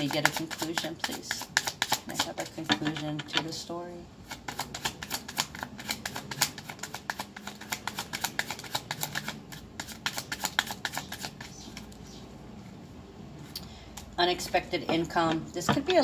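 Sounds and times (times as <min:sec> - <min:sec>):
cards being shuffled: 0:00.1 - 0:03.5, 0:04.2 - 0:12.8.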